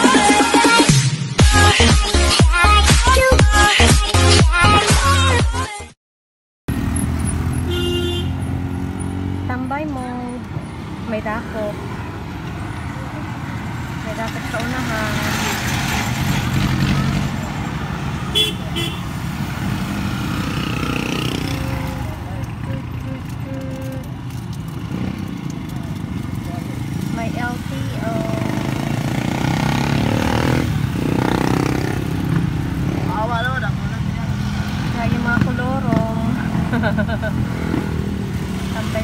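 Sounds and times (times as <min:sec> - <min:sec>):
engine and road rumble: 0:06.7 - 0:39.0
small motorcycle engine revving: 0:19.6 - 0:22.1, 0:28.1 - 0:33.2.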